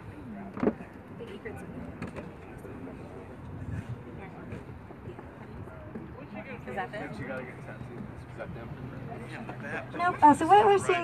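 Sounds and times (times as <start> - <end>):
passengers chattering: 0.0 - 11.0
tour boat background noise: 0.0 - 11.0.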